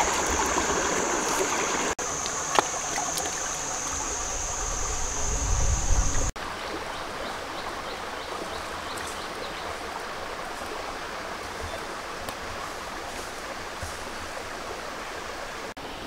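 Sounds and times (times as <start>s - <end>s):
water rushing over stones: 0.0s - 15.8s.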